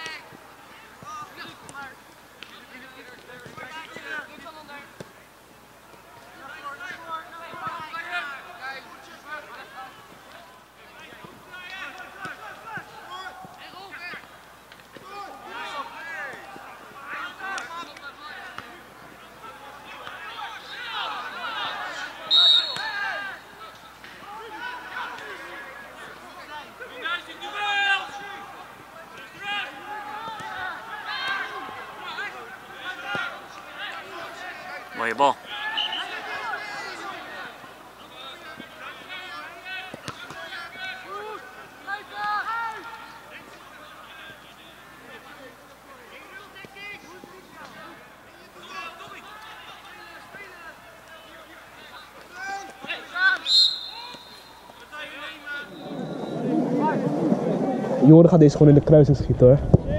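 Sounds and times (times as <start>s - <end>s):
voices calling: 6.2s - 58.5s
referee's whistle blast: 22.3s - 23.0s, 35.7s - 36.1s, 53.4s - 54.7s, 55.6s - 56.5s.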